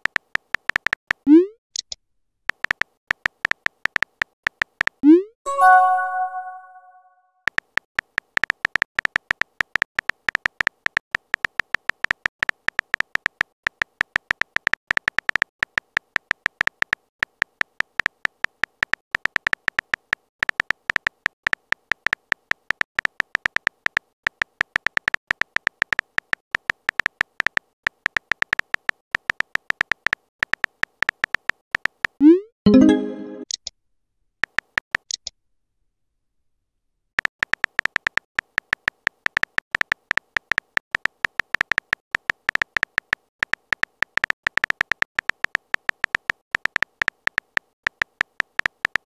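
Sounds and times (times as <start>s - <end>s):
keyboard typing ticks: 0.0s - 33.7s, 37.2s - 49.0s.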